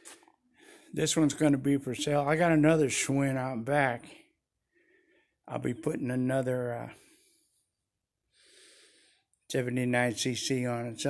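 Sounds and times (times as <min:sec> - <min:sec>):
faint breath: 0:00.6 - 0:01.0, 0:04.7 - 0:05.4, 0:06.9 - 0:07.7, 0:08.3 - 0:09.3.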